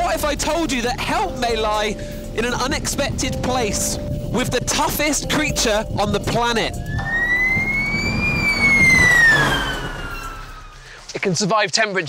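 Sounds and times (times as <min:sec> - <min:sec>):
low rumble: 0:00.2 - 0:10.9
motorcycle siren wailing: 0:06.8 - 0:10.8.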